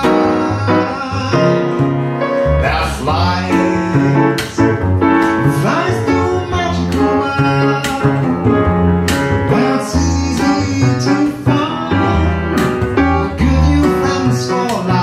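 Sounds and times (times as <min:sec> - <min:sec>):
piano chords: 0:00.0 - 0:15.0
plucked double bass: 0:00.0 - 0:15.0.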